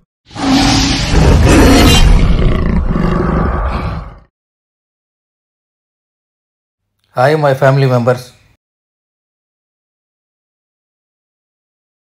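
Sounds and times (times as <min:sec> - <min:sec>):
big cat roaring: 0:00.3 - 0:04.3.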